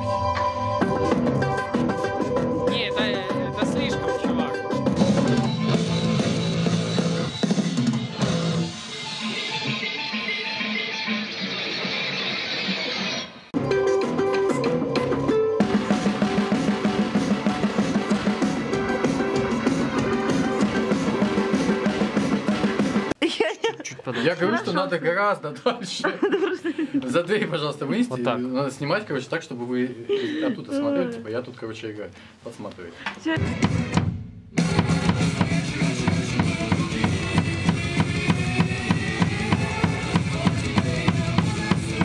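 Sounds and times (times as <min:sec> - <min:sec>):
band music: 0:00.0 - 0:23.2, 0:33.4 - 0:42.0.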